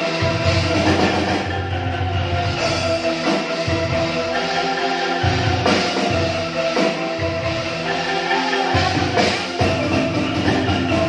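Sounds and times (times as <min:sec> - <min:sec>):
pitched bamboo instruments: 0:00.0 - 0:11.0.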